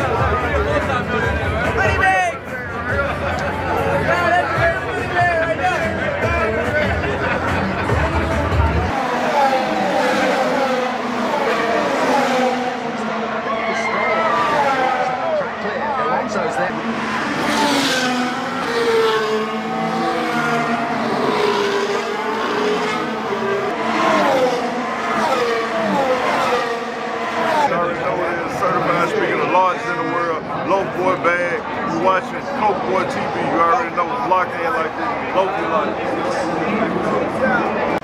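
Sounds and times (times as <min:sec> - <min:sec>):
race cars revving past: 0:07.2 - 0:38.0.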